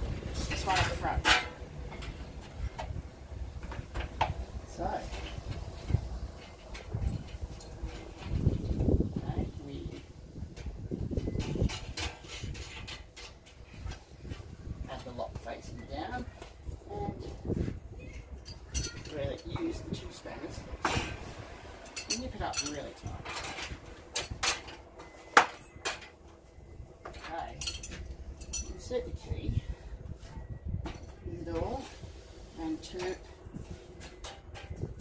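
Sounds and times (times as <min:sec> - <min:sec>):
metal clinks and taps: 0:27.0 - 0:28.9.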